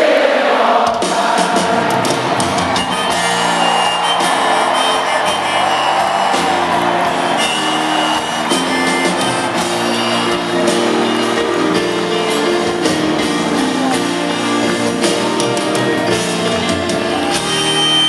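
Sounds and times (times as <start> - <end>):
crowd singing along: 0.0 - 5.2
crowd cheering: 0.0 - 18.0
live band with grand piano: 0.9 - 18.0.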